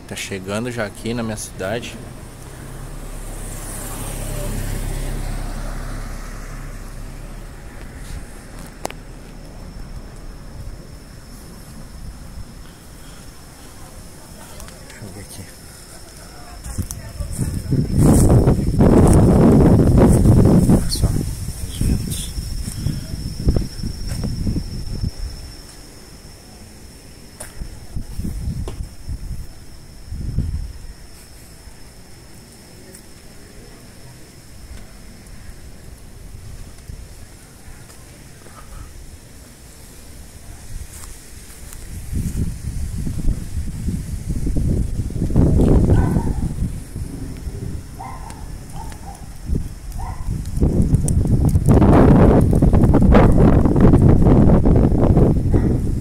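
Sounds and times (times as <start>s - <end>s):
wind gusts buffeting microphone: 0.0s - 25.8s, 27.5s - 31.2s, 40.0s - 56.0s.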